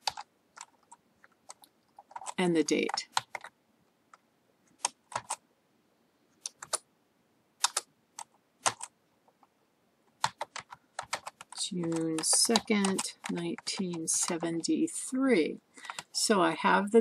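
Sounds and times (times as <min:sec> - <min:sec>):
computer keyboard typing: 0:00.0 - 0:03.5, 0:04.7 - 0:05.4, 0:06.4 - 0:06.8, 0:07.6 - 0:09.5, 0:10.2 - 0:14.7, 0:15.8 - 0:16.1.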